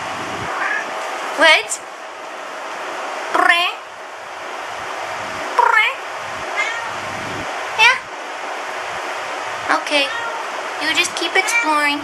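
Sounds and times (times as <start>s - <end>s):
cat meowing: 0.5s - 0.9s, 6.5s - 7.0s, 9.9s - 10.5s, 11.4s - 11.9s.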